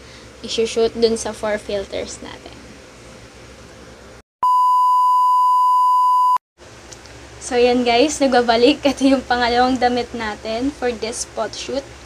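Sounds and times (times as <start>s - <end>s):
high-pitched electronic beep: 4.4s - 6.4s.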